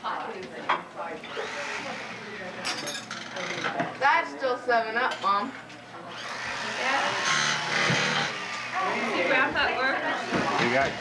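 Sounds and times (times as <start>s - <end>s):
family chatter: 0.0s - 11.0s
electric knife motor buzz: 1.2s - 3.8s, 6.1s - 9.4s, 10.0s - 11.0s.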